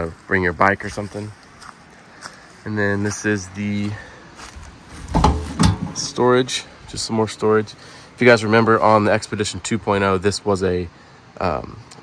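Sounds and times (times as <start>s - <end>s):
sharp metal clunks: 5.0s - 6.2s
metal door unlatched and opened: 5.1s - 6.2s.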